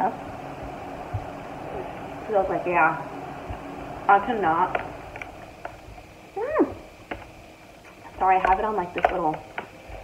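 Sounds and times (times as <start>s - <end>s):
fork clicking on plastic container: 7.9s - 9.7s.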